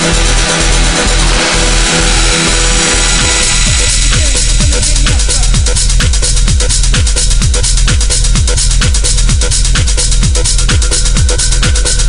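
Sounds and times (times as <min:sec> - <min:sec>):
dense wash of noise: 0:00.0 - 0:11.6
pulsing kick drum: 0:00.0 - 0:12.0.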